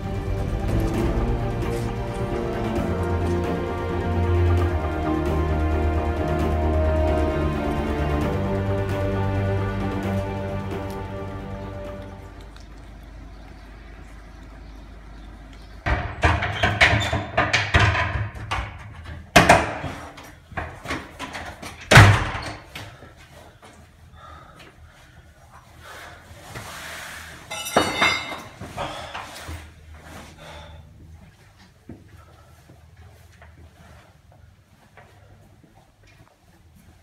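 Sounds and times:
heavy thuds and bangs: 15.8s - 20.0s.

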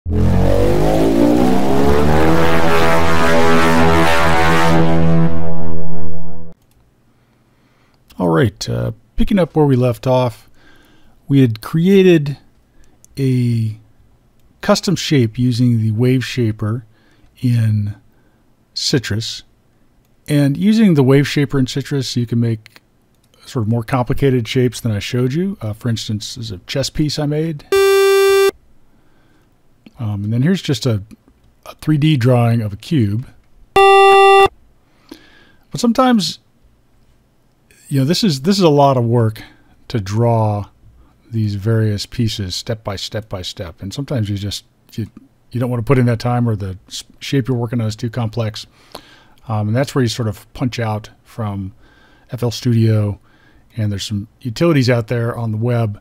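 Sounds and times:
synthesized buzzing tone: 0.1s - 6.6s, 27.7s - 28.5s, 33.8s - 34.5s.

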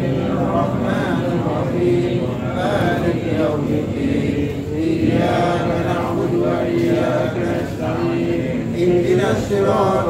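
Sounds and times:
voices chanting prayers: 0.0s - 10.0s.

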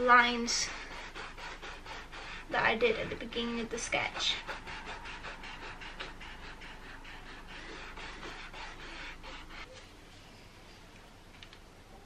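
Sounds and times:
eraser rubbing on canvas: 0.0s - 9.8s.

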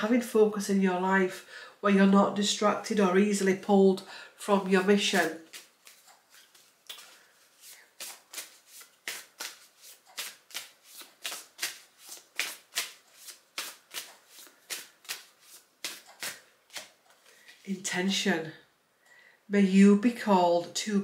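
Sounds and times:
cards being shuffled: 5.1s - 17.7s.

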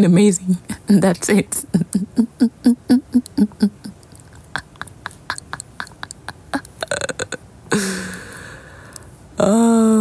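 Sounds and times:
young woman giggling: 1.8s - 6.8s.

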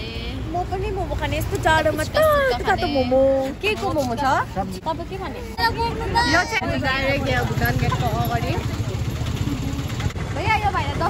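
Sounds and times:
people talking: 0.0s - 11.0s
small engine idling: 6.7s - 11.0s.

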